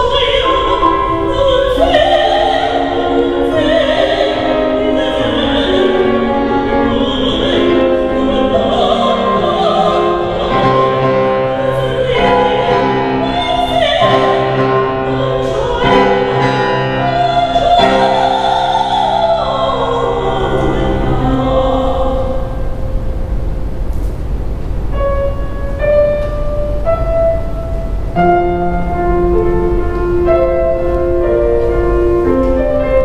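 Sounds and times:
woman singing opera: 0.0 - 22.9
grand piano accompaniment: 0.0 - 33.0.

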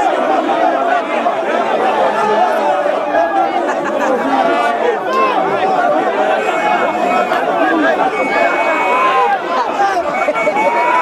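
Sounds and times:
dense crowd chatter: 0.0 - 11.0.

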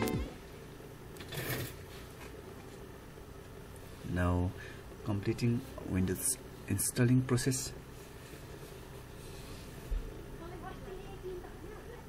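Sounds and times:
soft rustle: 7.8 - 10.2.

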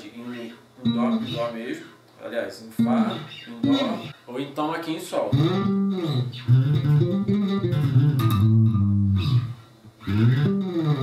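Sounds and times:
electric bass sliding notes: 5.3 - 11.0.

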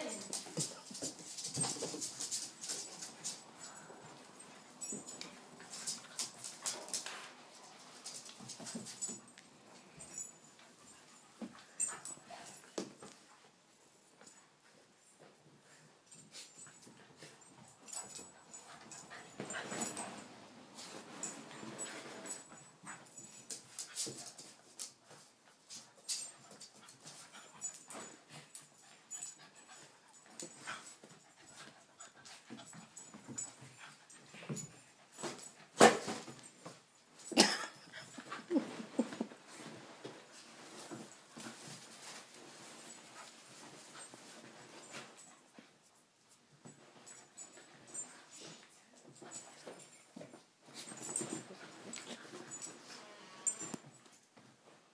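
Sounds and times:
dogs playing and scuffling: 0.0 - 54.9.

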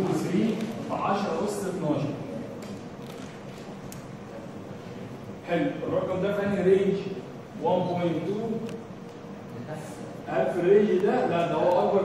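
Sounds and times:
man speaking: 0.0 - 2.2, 9.6 - 12.0.

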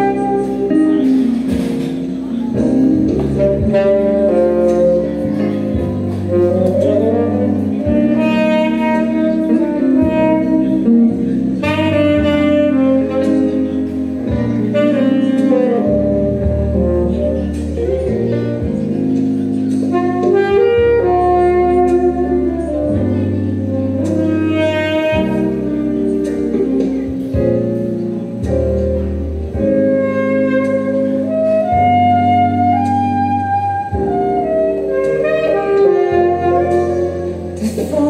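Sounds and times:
bass accompaniment: 0.0 - 38.0
saxophone jazz melody: 0.0 - 38.0.

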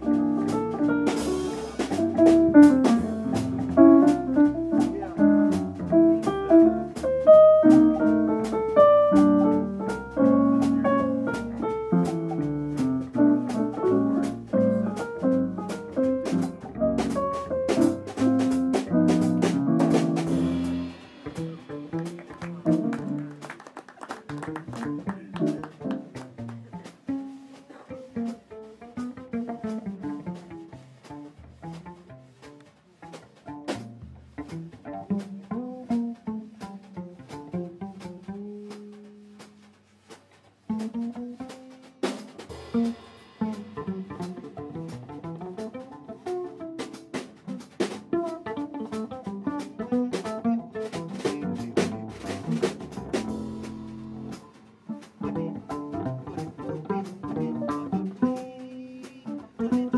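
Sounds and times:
electric keyboard chords: 0.0 - 21.1
plucked cello bass line: 0.0 - 23.5, 24.3 - 39.8, 40.6 - 59.9.

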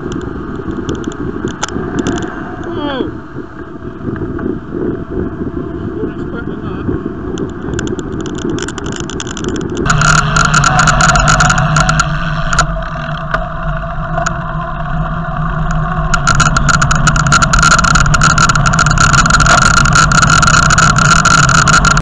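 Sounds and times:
road and wind noise: 0.0 - 22.0
rattling clicks from camera mount: 0.1 - 2.7, 7.3 - 13.4
steady hum: 9.7 - 22.0.

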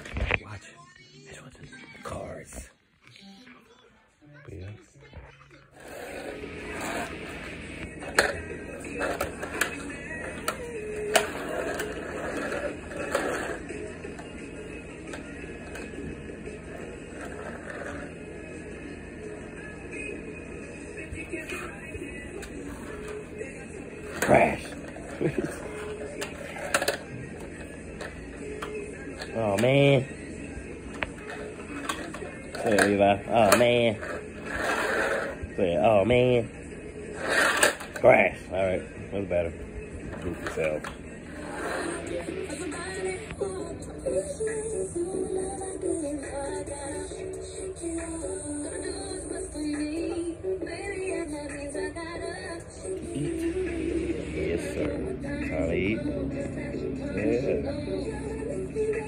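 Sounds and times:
toy car wheels rattling on concrete: 8.0 - 13.7, 16.7 - 18.1, 24.0 - 29.9, 31.2 - 35.4, 37.2 - 38.0
toys clicking and knocking: 24.1 - 27.1.

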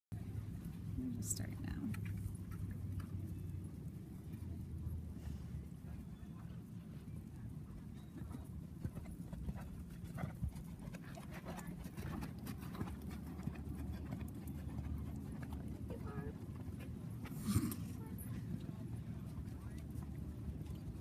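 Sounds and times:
low steady rumble: 0.1 - 21.0
horse hoofbeats on sand: 7.9 - 21.0.

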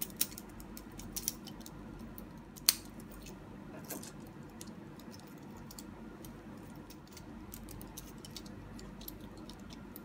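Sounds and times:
plastic toy parts clicking: 0.0 - 3.2, 4.5 - 10.0.

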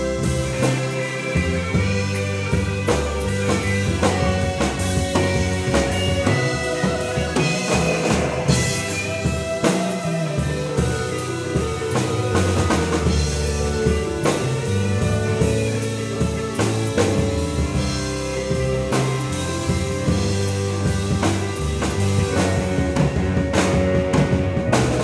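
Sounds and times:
bass guitar: 0.0 - 25.0
drum kit beat: 0.0 - 25.0
guitar sustained notes: 0.0 - 25.0
keyboards sustained notes: 0.0 - 25.0.

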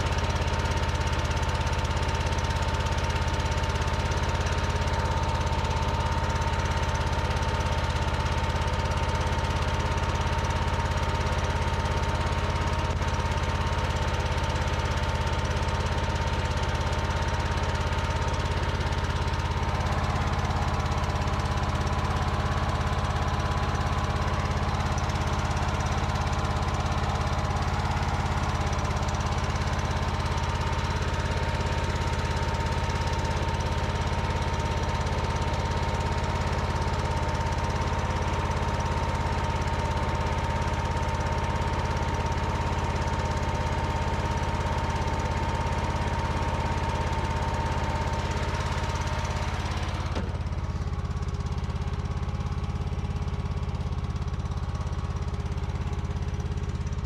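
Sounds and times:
garden tractor engine running: 0.0 - 57.0.

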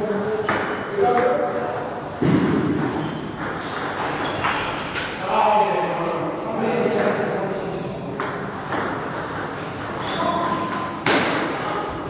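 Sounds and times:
table tennis balls clicking: 2.5 - 5.1.

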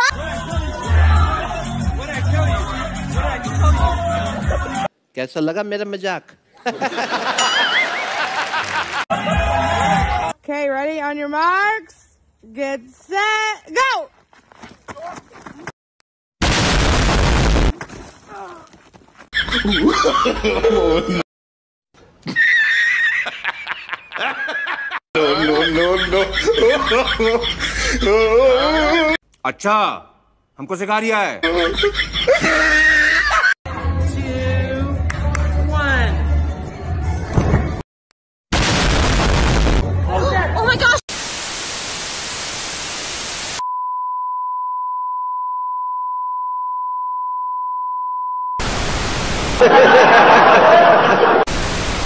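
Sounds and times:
people laughing: 6.6 - 9.4, 19.4 - 21.2, 22.3 - 29.2, 31.4 - 33.6, 49.6 - 51.5
loud burst of noise: 16.4 - 17.7, 38.5 - 39.9, 41.1 - 43.6, 48.6 - 49.7, 51.5 - 52.0
people talking: 25.2 - 26.4
television static hiss: 41.1 - 43.6, 48.6 - 49.6, 51.5 - 52.0.

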